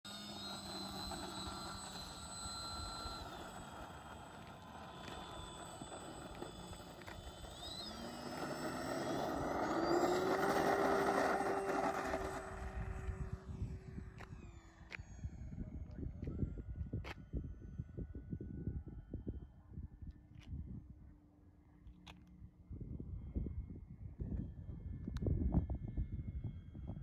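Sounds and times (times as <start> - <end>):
model airplane motor whine: 0.0 - 27.0
wind noise: 0.9 - 21.1, 22.7 - 27.0.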